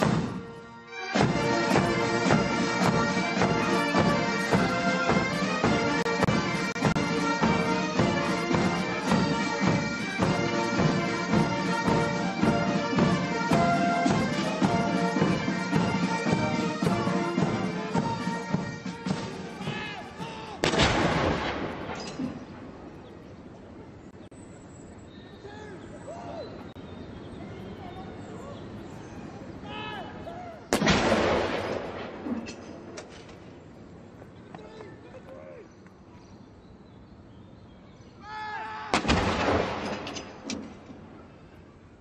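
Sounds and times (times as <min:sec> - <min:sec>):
field gun boom: 0:20.6 - 0:22.7, 0:30.7 - 0:33.0, 0:38.9 - 0:40.8.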